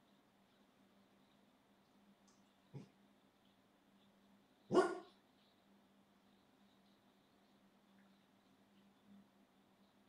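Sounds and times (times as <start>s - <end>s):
dog barking: 4.7s - 5.2s.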